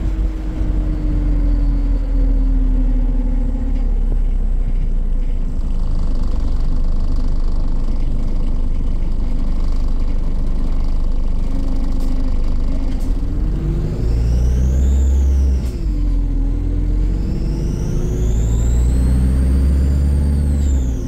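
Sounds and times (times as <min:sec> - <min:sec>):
droning tone: 0:00.0 - 0:05.7
bus engine and road rumble: 0:00.0 - 0:21.0.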